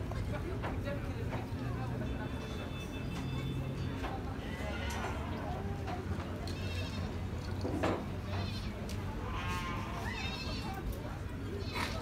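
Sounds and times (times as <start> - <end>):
sheep bleating: 8.3 - 10.8.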